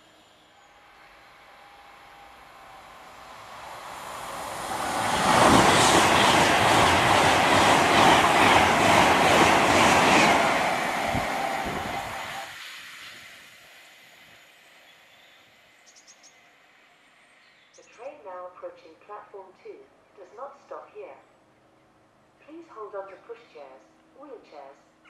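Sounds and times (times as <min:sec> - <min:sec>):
electric train passing at speed: 0:00.0 - 0:17.7.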